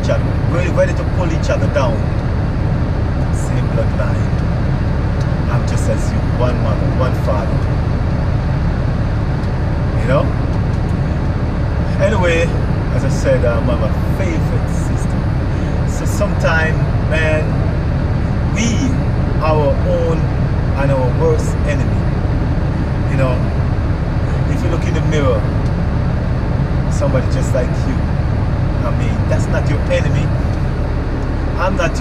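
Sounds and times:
truck engine idling: 0.0 - 32.0
person speaking: 10.0 - 10.4, 11.9 - 15.0, 28.8 - 30.4.

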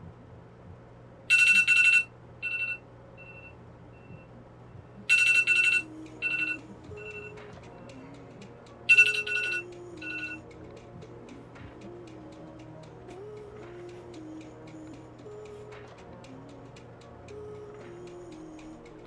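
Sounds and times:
smartphone alarm beeping: 1.3 - 4.3, 5.1 - 7.4, 8.9 - 10.4
soft music: 4.9 - 19.0.

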